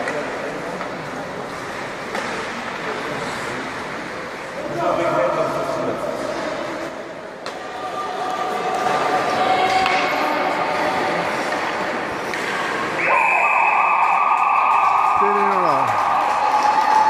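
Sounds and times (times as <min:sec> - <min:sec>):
voices in arena: 0:00.0 - 0:17.0
loud steady tone: 0:13.0 - 0:16.3.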